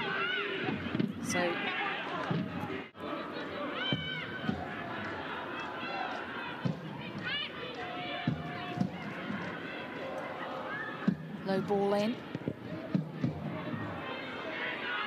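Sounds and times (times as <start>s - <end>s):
stadium background noise: 0.0s - 15.0s
voices shouting: 0.0s - 15.0s.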